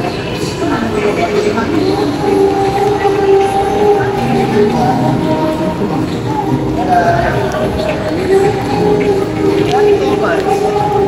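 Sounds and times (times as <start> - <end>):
noisy background: 0.0 - 11.0.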